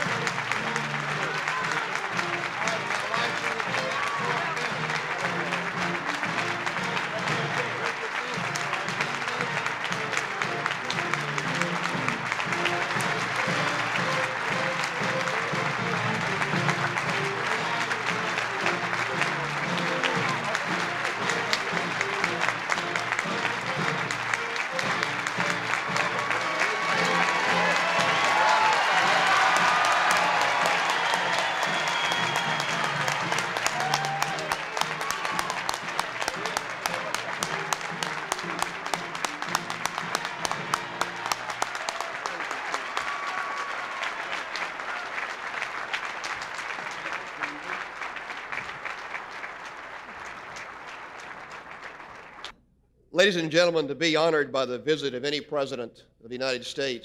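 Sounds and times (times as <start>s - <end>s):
music: 0.0s - 50.3s
audience applauding: 0.0s - 52.6s.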